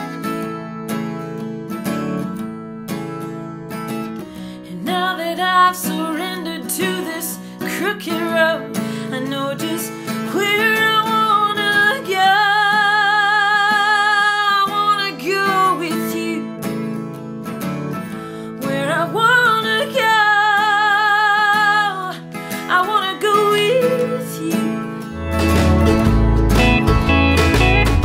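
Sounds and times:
strummed acoustic guitar: 0.0 - 28.0.

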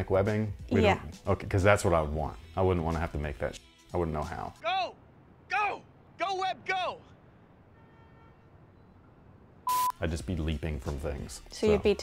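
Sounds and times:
short sharp beep with hiss: 9.7 - 10.0.

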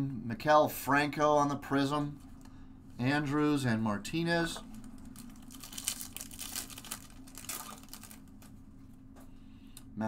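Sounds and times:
card pack wrapper tearing and crinkling: 4.8 - 8.5.

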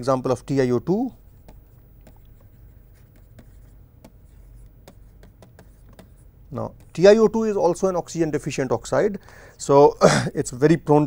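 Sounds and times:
low room hum: 0.0 - 11.0
stylus scratching on pen tablet: 1.2 - 8.1.

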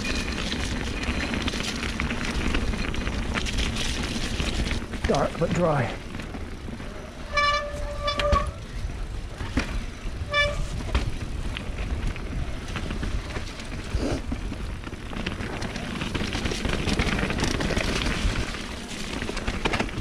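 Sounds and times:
bike rattling on dirt trail: 0.0 - 20.0
bike disc brakes squealing: 7.2 - 8.8, 10.2 - 10.8.

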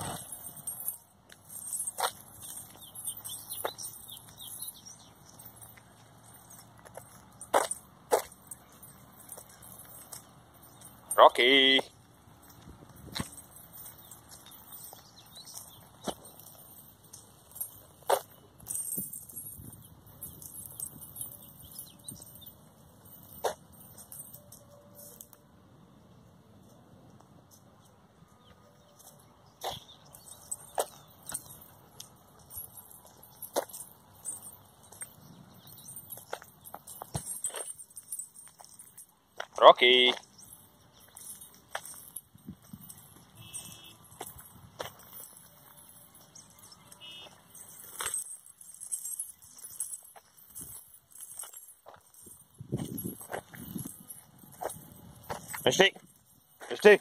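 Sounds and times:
metal chains clinking: 0.0 - 26.8, 27.4 - 57.0.

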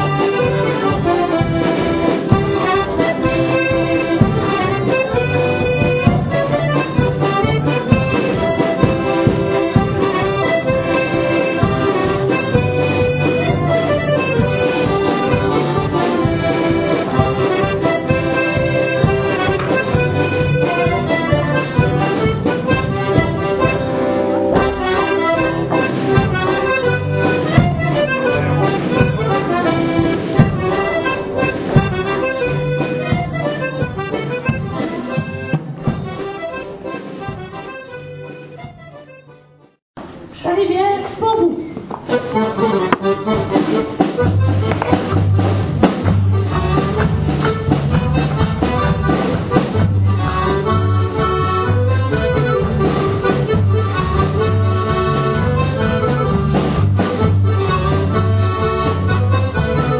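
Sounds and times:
low bass notes: 0.0 - 39.4, 42.4 - 59.9
accordion folk dance music: 0.0 - 59.9.

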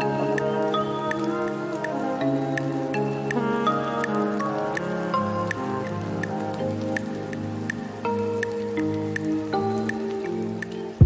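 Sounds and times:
light regular tick: 0.3 - 11.0.

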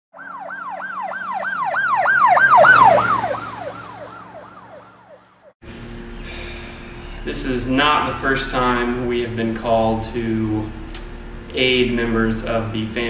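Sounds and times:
police siren yelping: 0.1 - 5.6.

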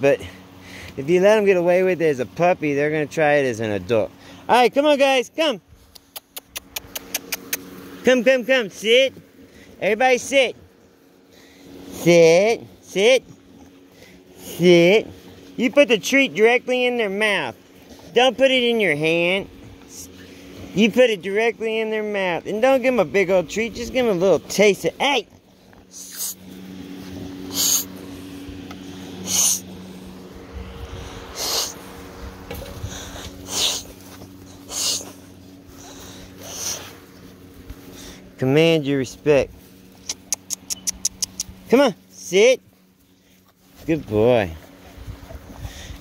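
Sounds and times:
faint steady hum: 0.0 - 46.0
mouth kiss-calls clicking: 5.8 - 7.8, 40.0 - 41.7
dog snorting through nose: 6.0 - 7.7, 25.2 - 28.2, 28.8 - 29.7, 31.0 - 31.9, 32.6 - 37.1.

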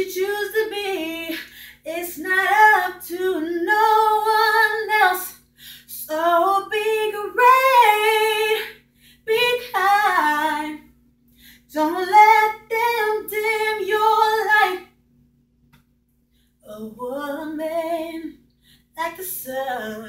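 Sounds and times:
woman singing a cappella: 0.0 - 11.0, 11.6 - 15.0, 16.6 - 20.0
singer breathing: 1.4 - 1.9, 5.4 - 5.9, 8.8 - 9.3, 11.3 - 11.7.

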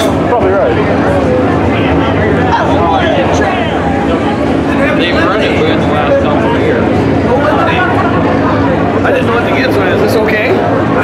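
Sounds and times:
race car engines rumbling: 0.0 - 11.0
spectators talking: 0.0 - 11.0.

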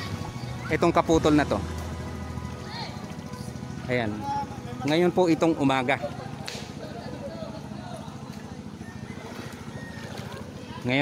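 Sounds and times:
faint crowd voices: 0.0 - 11.0
small boat engine running: 0.0 - 11.0.

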